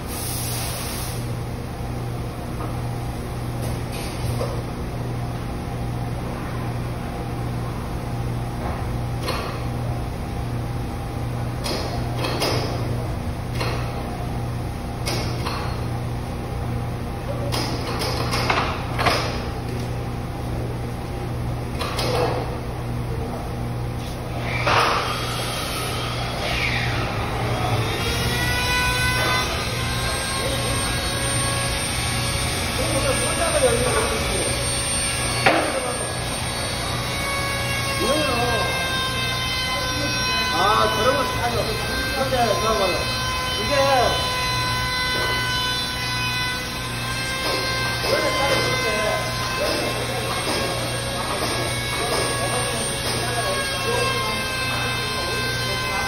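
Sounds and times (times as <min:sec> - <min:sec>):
low machine hum: 0:00.0 - 0:56.0.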